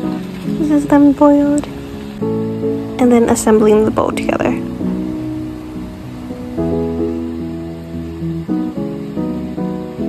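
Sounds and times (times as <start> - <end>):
soft instrumental music: 0.0 - 10.0.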